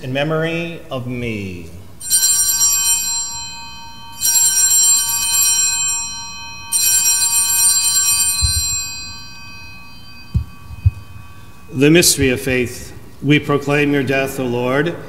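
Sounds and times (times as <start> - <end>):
altar bell ringing: 1.9 - 14.4.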